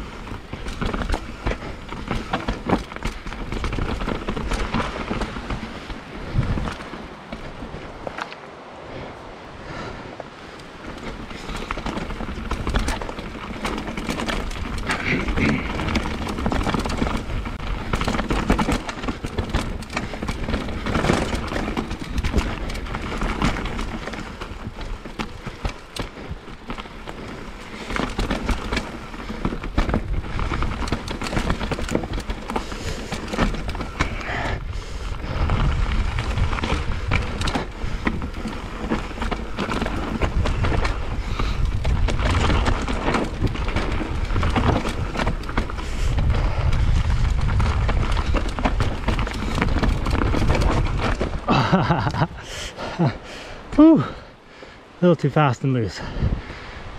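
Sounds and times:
bike rattling over stones: 0:00.0 - 0:56.9
bike tyre noise on trail: 0:00.0 - 0:56.9
wind buffeting microphone: 0:00.0 - 0:56.9.

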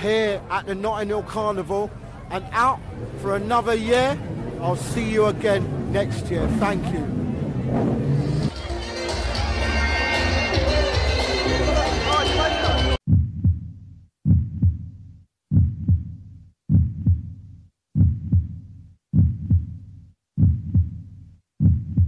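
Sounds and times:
crowd noise: 0:00.0 - 0:13.0
music: 0:08.5 - 0:13.0
heartbeat thumps: 0:13.0 - 0:22.0.

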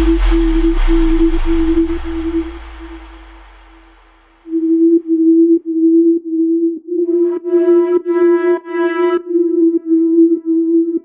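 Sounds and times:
deep bass: 0:00.0 - 0:07.4
steady synth tone: 0:00.0 - 0:11.0.

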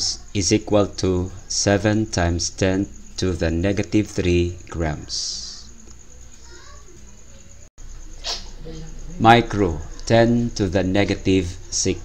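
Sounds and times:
faint room hum and hiss: 0:00.0 - 0:12.0.

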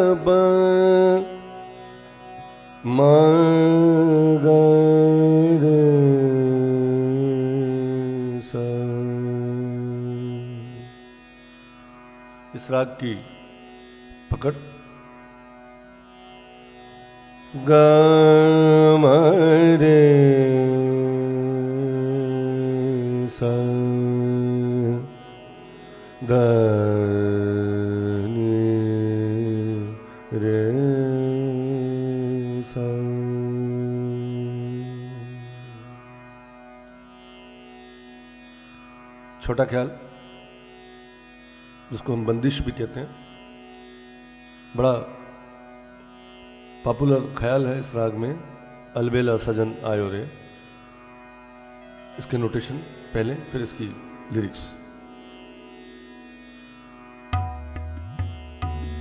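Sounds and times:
man singing long held notes: 0:00.0 - 0:01.9, 0:02.8 - 0:11.0, 0:17.5 - 0:36.1, 0:58.6 - 0:59.0.

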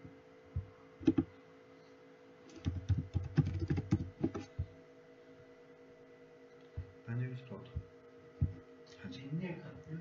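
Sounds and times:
steady electrical hum: 0:00.0 - 0:10.0
typing on computer keyboard: 0:01.0 - 0:01.3, 0:02.5 - 0:04.5.

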